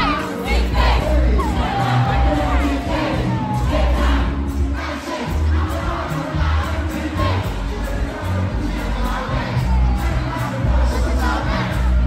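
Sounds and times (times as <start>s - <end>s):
backing track with heavy bass beat: 0.0s - 12.0s
crowd noise: 0.0s - 12.0s
person rapping into a microphone: 4.9s - 12.0s.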